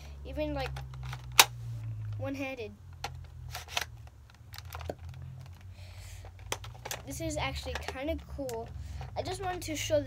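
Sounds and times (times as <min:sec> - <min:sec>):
plastic controller clicks and knocks: 0:06.3 - 0:08.0.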